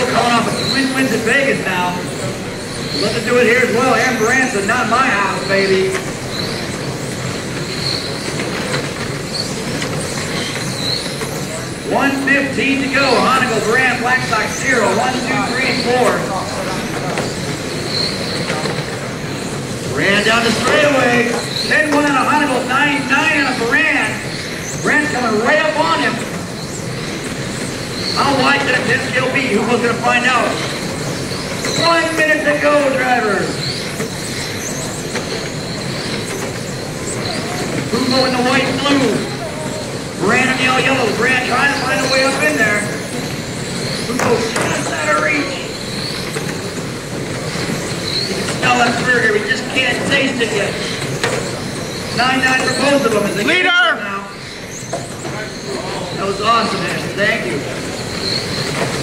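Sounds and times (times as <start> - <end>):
rc cars motor and gear whine: 0.0 - 59.0.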